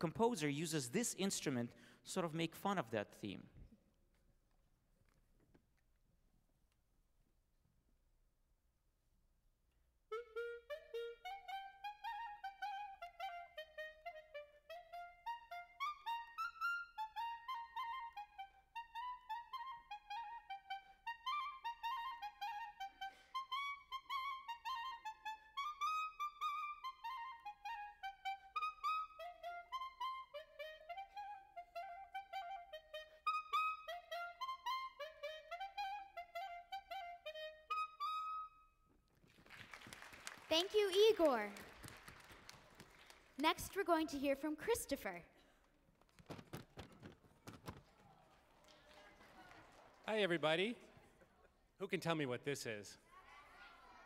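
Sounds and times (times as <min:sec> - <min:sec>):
clarinet playing quick melody: 0:10.1 - 0:38.8.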